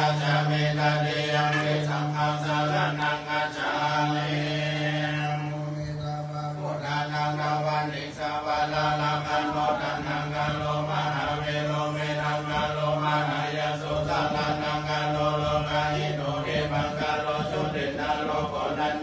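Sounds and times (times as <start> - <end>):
group chanting in unison: 0.0 - 19.0.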